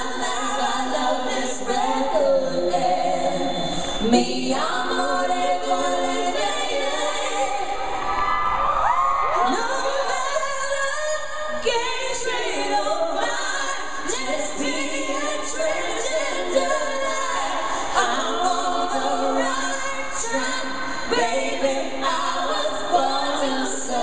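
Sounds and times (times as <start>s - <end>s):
backing singers: 0.0s - 24.0s.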